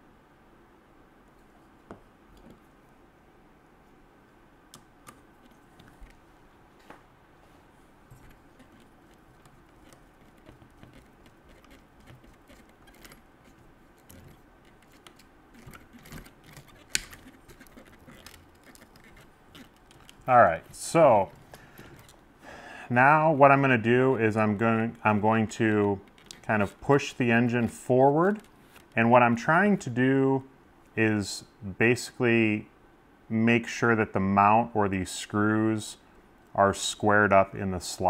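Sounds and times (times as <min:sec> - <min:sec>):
small metal parts clicking: 0:08.2 - 0:20.3.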